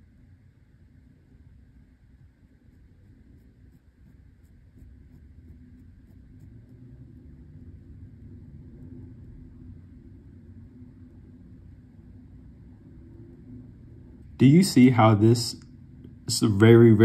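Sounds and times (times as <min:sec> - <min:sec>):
faint low rumble: 0:00.0 - 0:17.0
steady low hum: 0:00.0 - 0:17.0.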